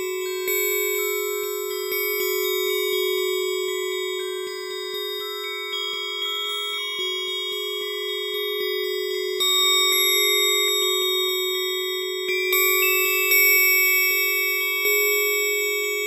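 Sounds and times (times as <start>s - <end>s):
bell-like synthesizer notes: 0.0s - 16.0s.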